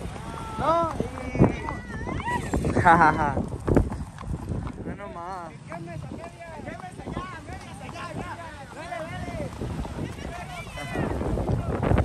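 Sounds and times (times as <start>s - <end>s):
hooves clopping: 0.0s - 12.0s.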